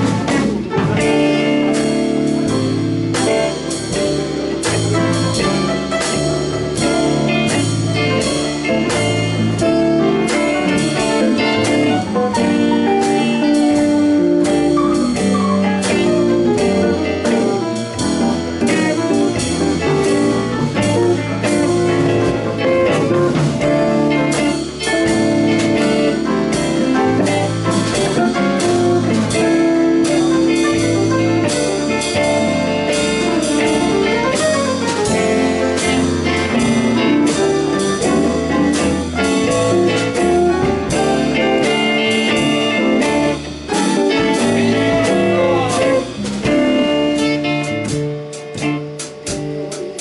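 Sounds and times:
rock band playing: 0.0s - 50.0s.

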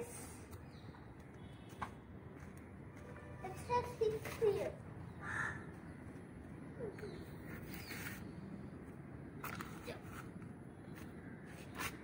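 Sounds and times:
harsh crow-like bird call: 5.2s - 5.7s.

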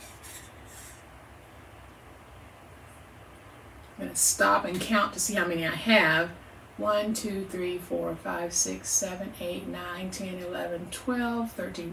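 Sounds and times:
wire scratching: 0.0s - 1.0s.

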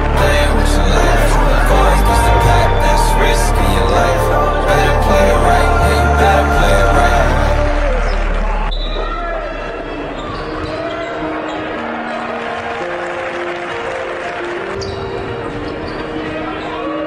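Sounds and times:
soft background music: 0.0s - 8.7s
bass-heavy music: 0.0s - 10.4s.

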